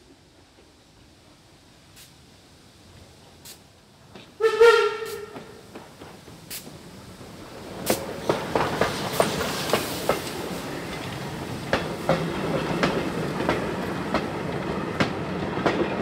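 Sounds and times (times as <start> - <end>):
train rumble: 0.0 - 16.0
steam hissing: 0.9 - 15.8
steam whistle blast: 4.4 - 5.6
wheels clacking over rail joints: 5.0 - 16.0.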